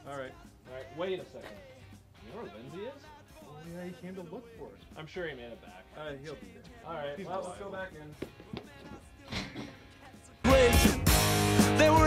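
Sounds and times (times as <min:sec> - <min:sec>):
footsteps on concrete steps: 0:08.0 - 0:10.1.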